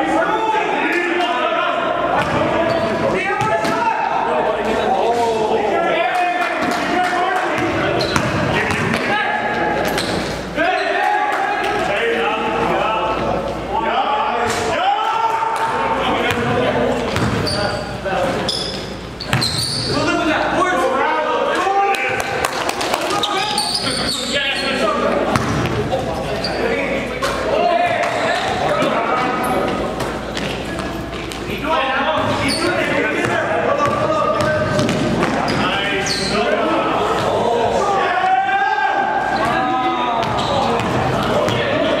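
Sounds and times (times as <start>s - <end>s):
players shouting: 0.0s - 18.0s, 19.8s - 30.3s, 31.6s - 42.0s
basketball bouncing on gym floor: 7.6s - 9.1s, 17.2s - 17.5s, 25.3s - 25.8s, 33.2s - 35.5s, 40.2s - 41.7s.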